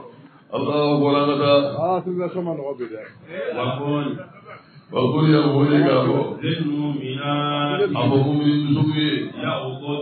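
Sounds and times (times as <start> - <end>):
man chanting: 0.5 - 1.8, 4.9 - 10.0.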